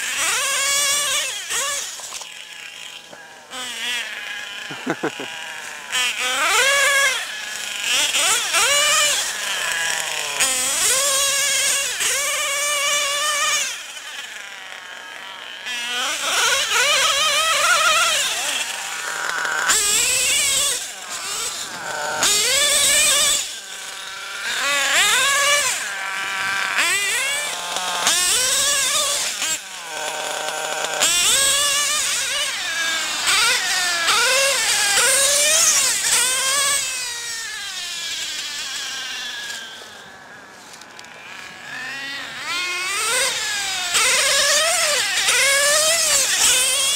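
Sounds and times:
nitro engine revving: 0.0 - 46.9.

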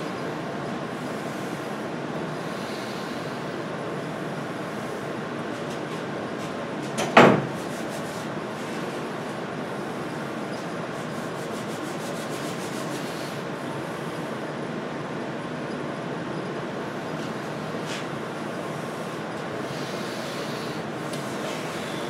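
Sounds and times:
steady background noise: 0.0 - 22.0.

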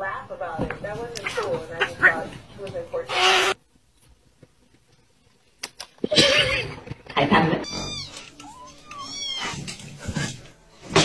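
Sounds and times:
cat meowing: 7.6 - 9.6.

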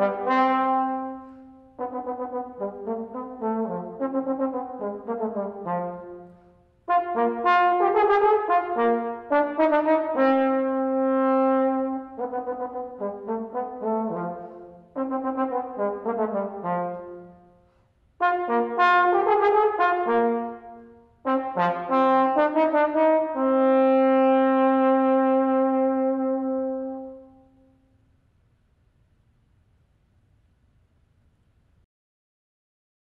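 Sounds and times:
solo trombone playing: 0.0 - 27.9.

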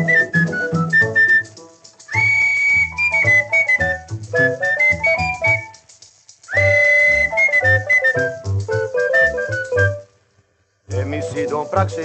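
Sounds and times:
latin dance-band music from a record: 0.0 - 5.8, 6.6 - 10.0, 11.0 - 12.0.

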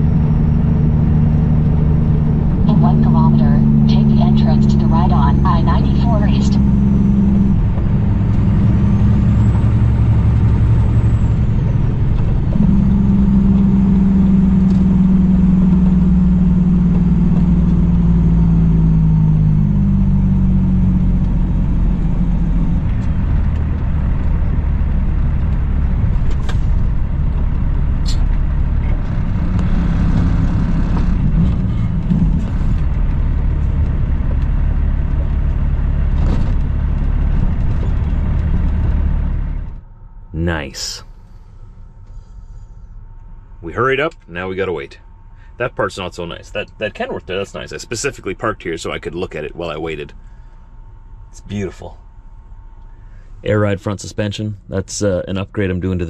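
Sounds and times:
diesel truck engine drone: 0.0 - 56.0.

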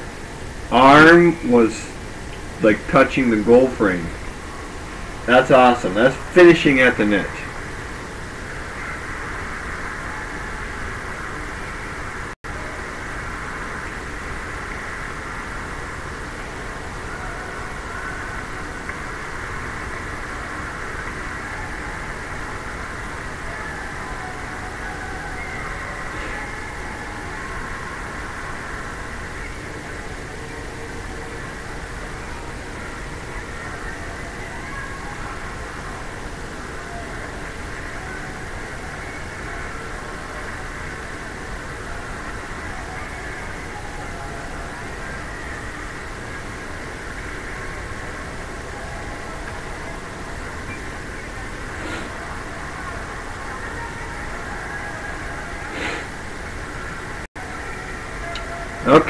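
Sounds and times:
faint crowd voices: 0.0 - 59.0
ice hockey rink noise: 0.0 - 59.0.

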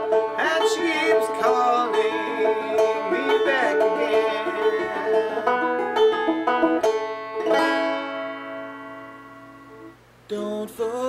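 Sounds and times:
banjo chord ringing: 0.0 - 9.9.

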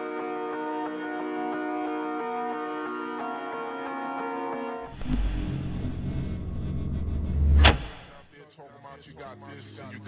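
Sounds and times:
music: 0.0 - 10.0
deep bass rumble: 4.9 - 8.2.

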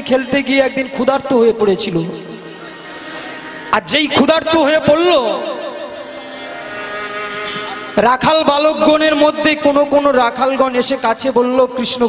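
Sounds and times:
harmonium chord drone: 0.0 - 10.9.

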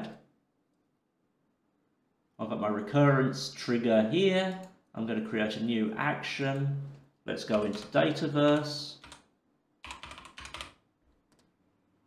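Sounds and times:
typing on computer keyboard: 7.5 - 11.5.

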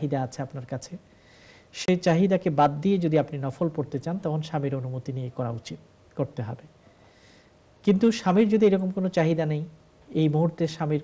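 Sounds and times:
man talking: 0.0 - 1.0, 1.8 - 6.8, 7.8 - 11.0.

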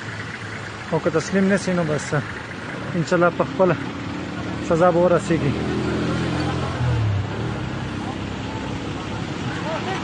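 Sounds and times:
low engine hum: 0.0 - 10.0
vehicle road noise: 0.0 - 10.0
faint voices: 6.2 - 10.0.

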